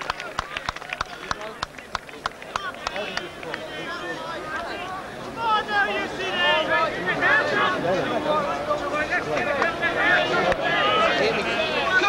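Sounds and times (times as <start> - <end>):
voices shouting: 2.6 - 12.0.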